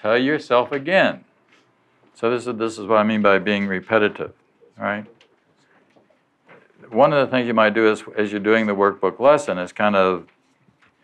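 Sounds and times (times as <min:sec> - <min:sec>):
man speaking: 0:00.0 - 0:01.3, 0:02.2 - 0:05.2, 0:06.7 - 0:10.3.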